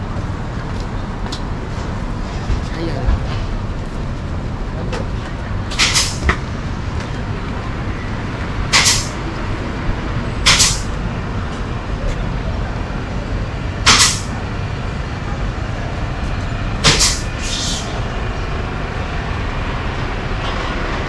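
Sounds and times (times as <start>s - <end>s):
street traffic rumble: 0.0s - 21.0s
short sharp hisses: 16.9s - 18.0s.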